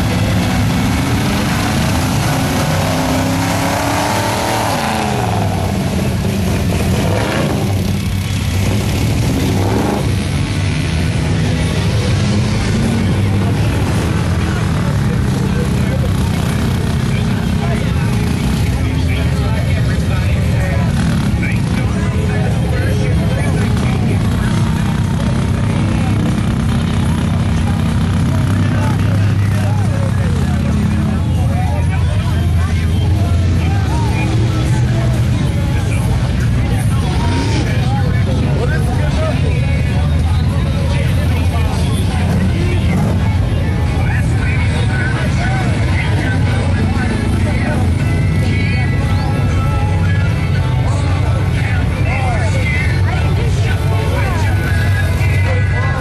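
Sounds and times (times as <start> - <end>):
crowd voices and shouts: 0.0 - 56.0
truck engines rumbling: 0.0 - 56.0.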